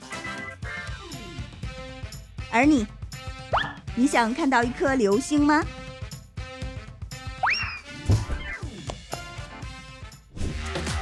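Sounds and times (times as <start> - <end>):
background music: 0.0 - 11.0
cartoon rising whistle: 7.4 - 7.8.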